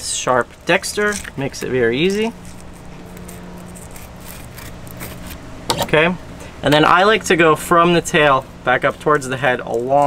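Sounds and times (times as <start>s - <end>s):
steady low hum: 0.0s - 10.0s
knife slicing fish: 2.3s - 5.4s.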